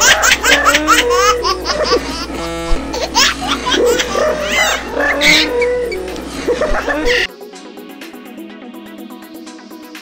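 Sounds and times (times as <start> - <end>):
high-pitched laughter: 0.0 - 7.3.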